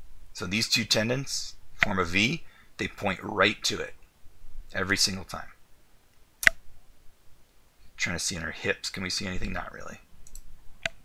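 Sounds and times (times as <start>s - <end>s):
sharp click: 6.4s - 6.6s, 10.2s - 11.0s.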